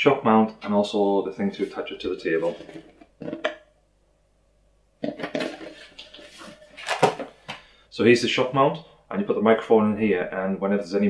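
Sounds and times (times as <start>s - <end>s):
rustling of parts in a box: 5.3s - 7.3s.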